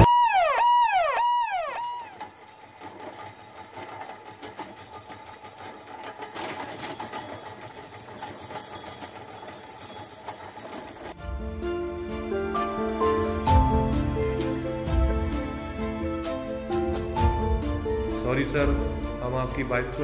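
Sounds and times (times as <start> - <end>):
rising and falling wail: 0.0 - 2.2
stretcher trolley wheels rattling: 1.1 - 11.8, 12.4 - 20.0.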